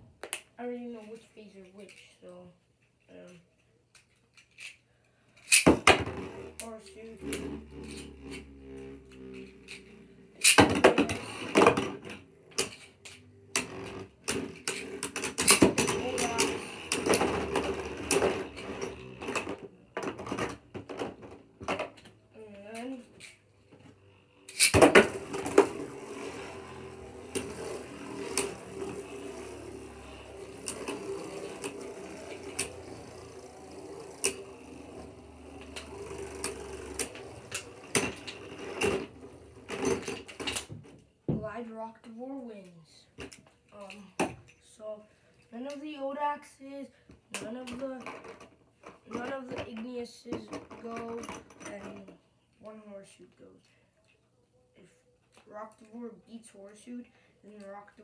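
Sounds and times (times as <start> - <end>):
spinning tops clicking and scraping: 4.0 - 20.7, 21.4 - 40.7
whirring hum of spinning tops: 5.4 - 41.4.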